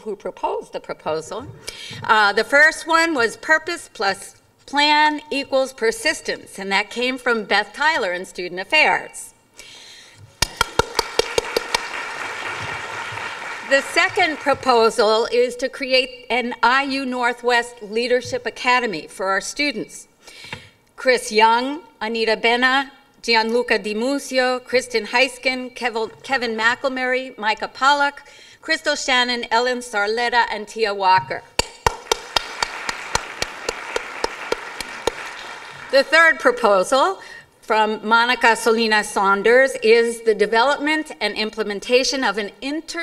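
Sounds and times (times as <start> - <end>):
sharp hand claps: 10.4 - 14.6, 31.6 - 36.0
audience applause: 10.5 - 14.7, 31.8 - 36.1.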